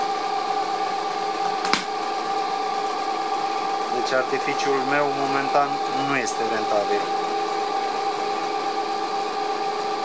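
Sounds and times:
motor generator humming and whining: 0:00.0 - 0:10.0.

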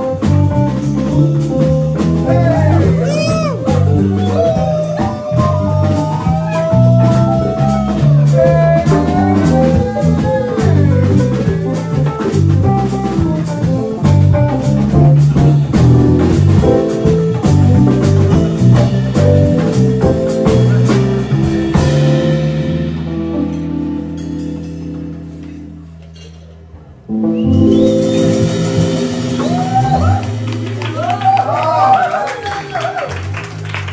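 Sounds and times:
keyboard: 0:00.0 - 0:32.5
bass guitar: 0:00.0 - 0:33.9
drum kit: 0:00.0 - 0:33.9
lead melody bending in pitch: 0:27.1 - 0:30.8.

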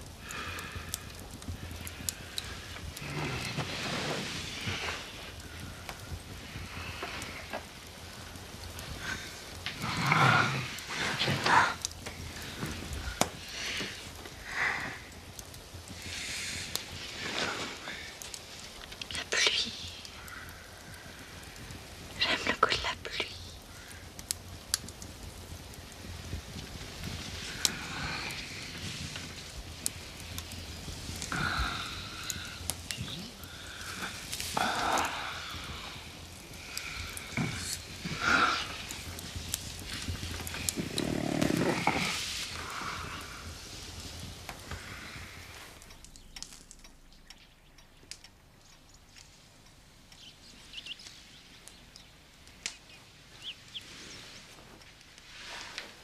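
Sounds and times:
breathing and sighs: 0:00.2 - 0:07.6, 0:08.8 - 0:15.2, 0:31.2 - 0:39.2
whispering: 0:02.4 - 0:05.2, 0:09.8 - 0:13.2, 0:19.0 - 0:20.5, 0:22.1 - 0:23.7, 0:31.3 - 0:35.8, 0:36.8 - 0:39.0
soft clicks: 0:45.7 - 0:53.0.

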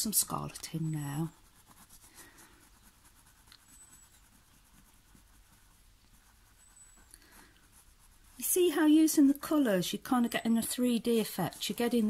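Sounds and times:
crayon scratching on paper: 0:00.0 - 0:12.0.

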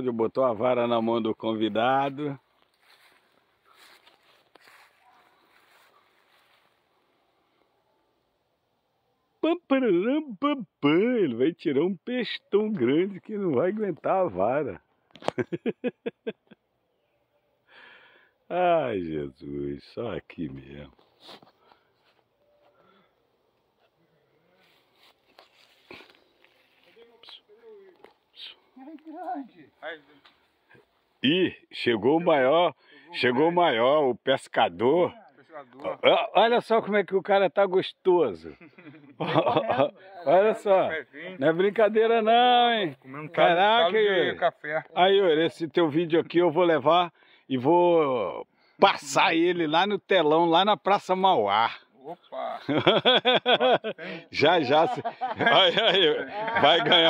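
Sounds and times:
faint outdoor hiss: 0:00.0 - 0:57.0.

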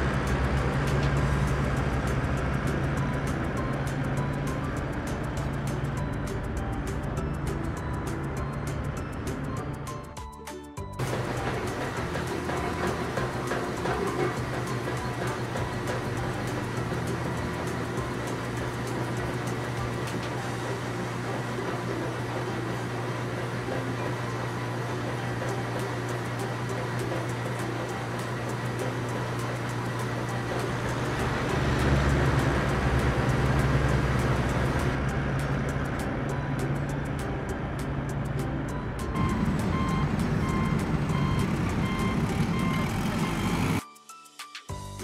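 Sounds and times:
heavy truck engine running: 0:00.0 - 0:43.8
reversing beeper: 0:38.8 - 0:43.8.

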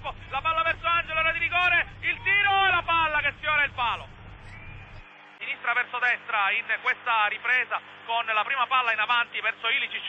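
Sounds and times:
man commentating: 0:00.0 - 0:04.1
low background rumble: 0:00.0 - 0:05.0.

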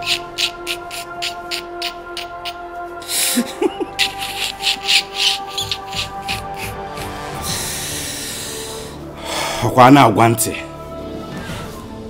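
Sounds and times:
background music with sustained tones: 0:00.0 - 0:12.0
man's breathy laughter: 0:00.1 - 0:08.2.

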